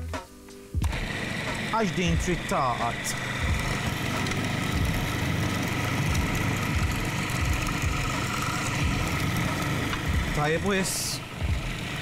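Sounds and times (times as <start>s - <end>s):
food processor motor whine: 0.8s - 12.0s.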